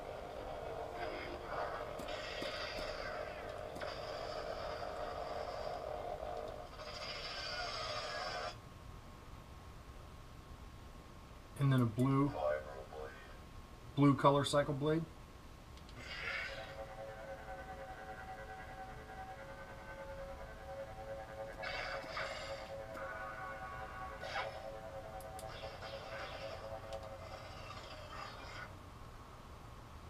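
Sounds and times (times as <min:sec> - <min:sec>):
lightsaber ignition: 0:00.0 - 0:08.6, 0:15.9 - 0:28.7
steady electric hum: 0:00.0 - 0:30.0
lightsaber retraction: 0:24.1 - 0:28.7.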